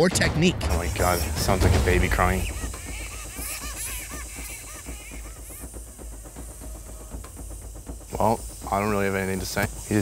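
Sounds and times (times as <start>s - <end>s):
bat squealing: 0.8s - 7.2s.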